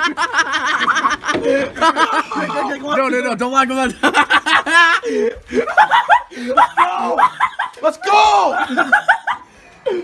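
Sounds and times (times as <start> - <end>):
person laughing hard: 0.0 - 2.7, 4.0 - 7.8, 8.5 - 10.0.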